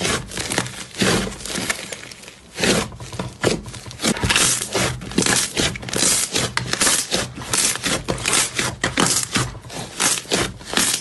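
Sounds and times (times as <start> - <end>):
crunchy slime crackling: 0.0 - 11.0.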